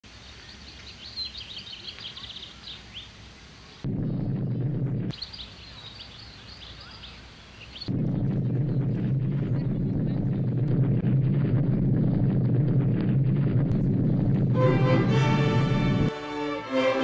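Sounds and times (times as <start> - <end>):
small birds chirping: 0.1 - 10.7
loud low-pitched noise: 3.8 - 5.2, 7.8 - 16.2.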